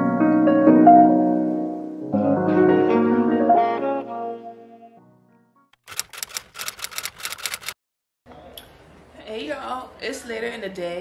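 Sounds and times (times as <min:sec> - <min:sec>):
typewriter key clicks: 0:05.9 - 0:07.8.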